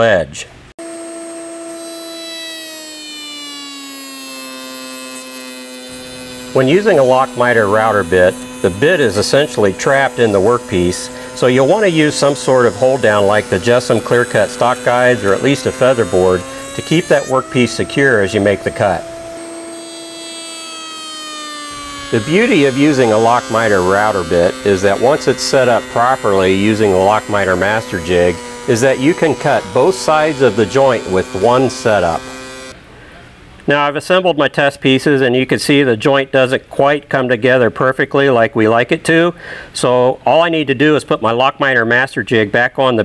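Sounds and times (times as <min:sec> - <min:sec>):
router motor whining: 0:00.8 - 0:32.8.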